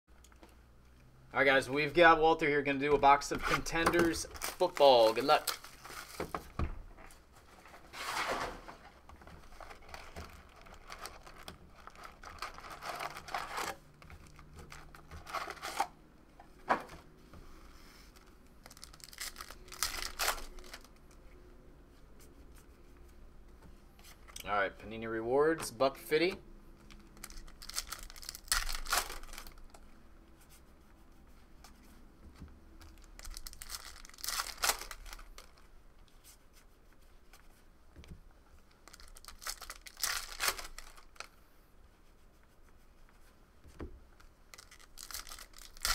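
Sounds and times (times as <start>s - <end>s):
cards rustling: 2.0s - 6.5s, 9.3s - 16.0s, 18.0s - 21.2s, 26.9s - 29.8s, 32.8s - 36.4s, 38.6s - 41.4s, 43.8s - 45.9s
plastic wrap crinkling and tearing: 3.4s - 6.3s, 9.4s - 15.9s, 18.2s - 21.1s, 26.9s - 29.8s, 32.9s - 35.7s, 38.7s - 41.3s, 44.5s - 45.9s.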